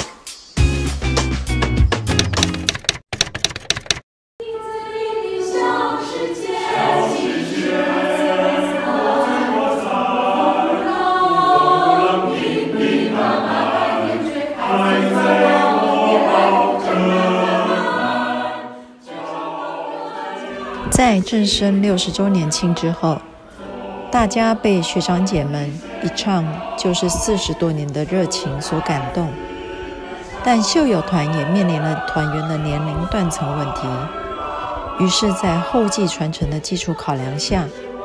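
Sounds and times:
music with rapid clicks: 1.5 - 4.0
choir singing a cappella: 4.4 - 38.0.

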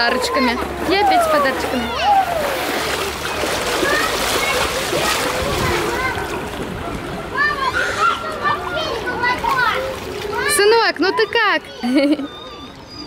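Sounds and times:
children's voices: 0.0 - 13.0
pool water splashing: 0.0 - 13.0.

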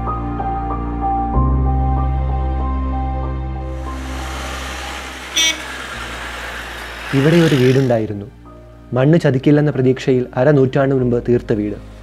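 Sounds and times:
outdoor noise: 3.8 - 8.0
short high vehicle horn beep: 5.3 - 6.1.

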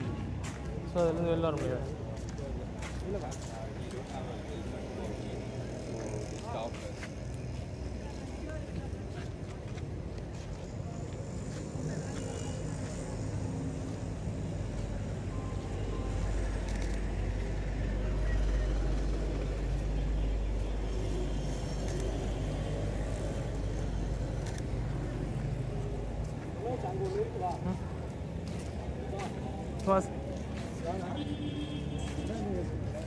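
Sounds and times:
low traffic rumble: 0.0 - 33.0.

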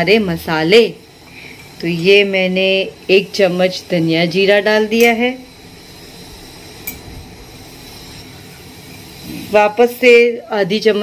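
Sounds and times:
steel spoon clinking on pot: 6.8 - 7.1.

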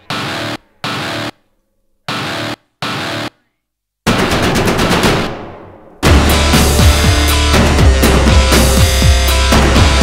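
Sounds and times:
burst of rapid hits: 4.1 - 10.0.

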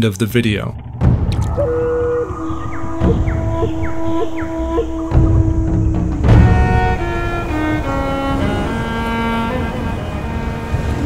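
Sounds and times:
low rumble: 0.2 - 11.0
electronic pitch blips and chirps: 0.4 - 5.9
held electronic tones: 0.4 - 6.1.

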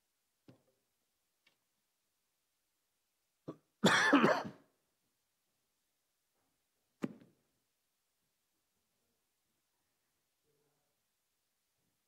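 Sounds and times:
person clearing throat: 3.4 - 4.7.

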